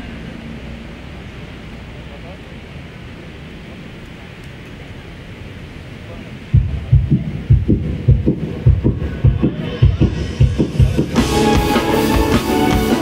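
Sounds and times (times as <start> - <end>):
kick drum beat: 6.6 - 13.0
live band playing: 6.6 - 13.0.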